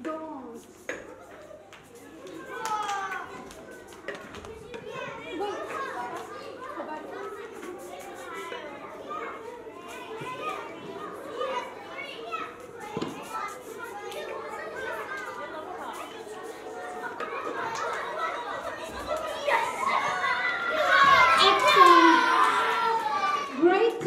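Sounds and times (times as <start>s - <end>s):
children shouting: 1.4s - 23.9s.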